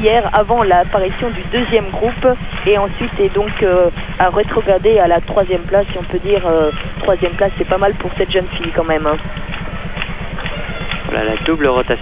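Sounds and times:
pulsing low electrical buzz: 0.0 - 12.0.

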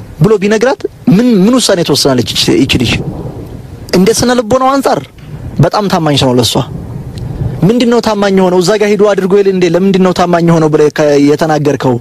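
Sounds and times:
low rumbling noise: 0.0 - 12.0
person talking: 0.2 - 3.1, 3.9 - 6.8, 7.6 - 12.0.

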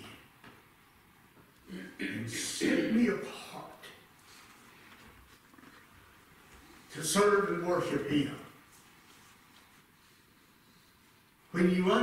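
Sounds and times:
man speaking: 1.6 - 4.1, 6.9 - 8.6, 11.5 - 12.0.

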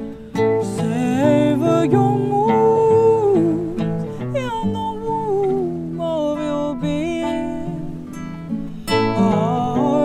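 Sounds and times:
acoustic guitar: 0.0 - 10.0
woman singing: 0.2 - 10.0.

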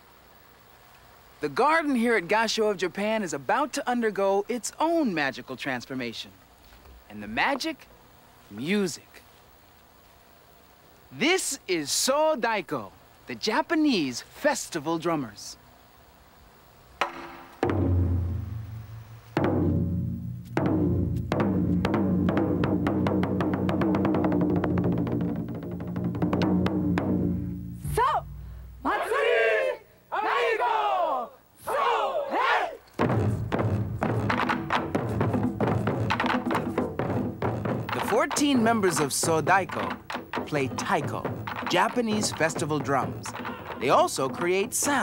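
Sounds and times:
sharp knock: 17.0 - 19.9, 33.0 - 45.0
deep taiko drum strikes: 17.0 - 28.8, 33.0 - 45.0.

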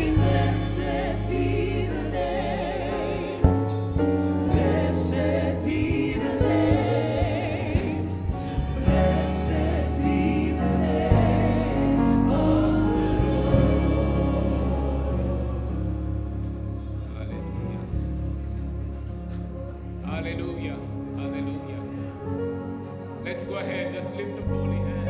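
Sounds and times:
group singing with vibrato: 0.0 - 17.2
band with steady bass line: 0.0 - 23.2.

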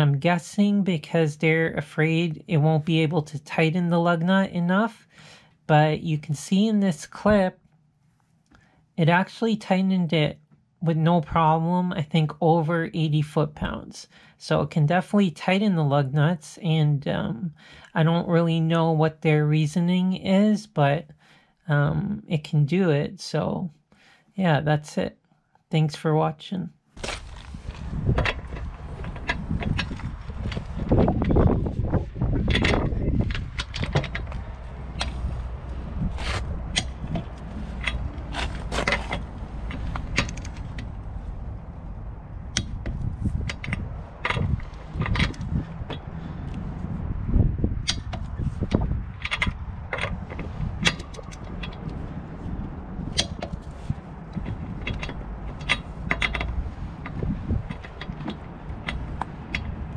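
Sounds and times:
low rumble: 27.1 - 59.9.

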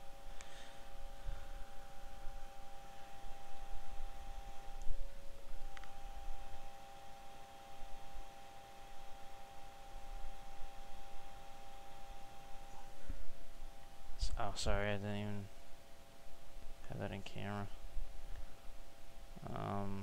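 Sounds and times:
two-tone electrical whine: 0.0 - 20.0.

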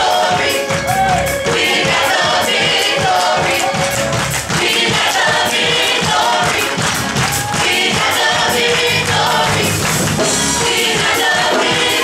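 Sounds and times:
band playing: 0.0 - 12.0
gospel choir singing: 0.0 - 12.0
steady drum beat: 0.0 - 12.0.

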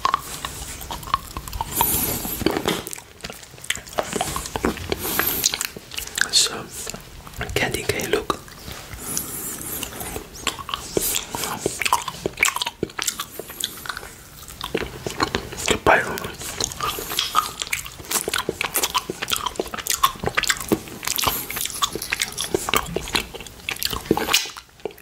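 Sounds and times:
biting on hard candy: 0.0 - 25.0
wet mouth sounds sucking candy: 0.0 - 25.0.

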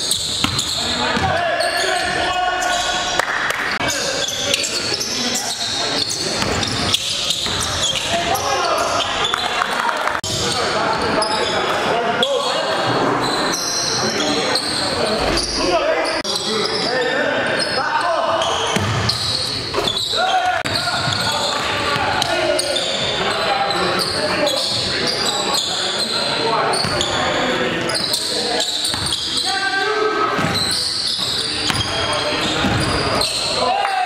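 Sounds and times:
players' voices: 0.0 - 34.0
ball bouncing on wooden court: 0.2 - 1.4, 18.7 - 19.9, 32.6 - 33.0.

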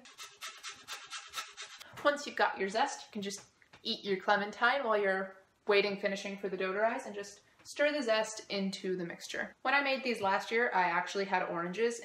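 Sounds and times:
peel scraping on metal grater: 0.0 - 1.8.

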